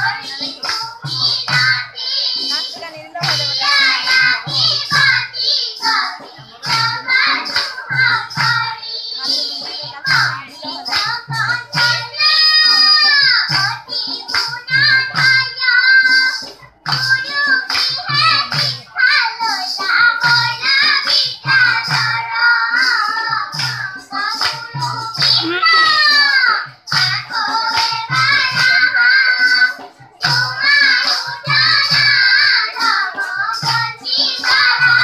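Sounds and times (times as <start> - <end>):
hand clapping: 0.0 - 1.8, 2.4 - 4.3, 5.8 - 18.9, 22.8 - 32.2, 32.8 - 35.0
children singing: 0.0 - 35.0
hand drum beat: 0.0 - 35.0.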